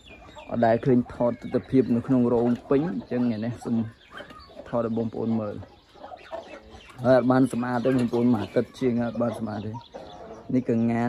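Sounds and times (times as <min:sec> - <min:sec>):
chickens clucking: 0:00.0 - 0:11.0
man talking: 0:00.5 - 0:04.0, 0:04.6 - 0:05.7, 0:06.9 - 0:09.8, 0:10.4 - 0:11.0.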